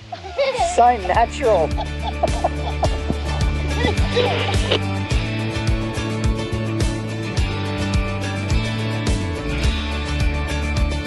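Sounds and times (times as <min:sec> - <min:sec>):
background music with bass and beat: 0:00.0 - 0:11.0.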